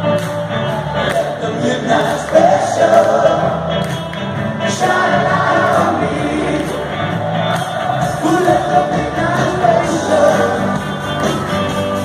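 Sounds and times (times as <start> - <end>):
live rock band with singing: 0.0 - 12.0.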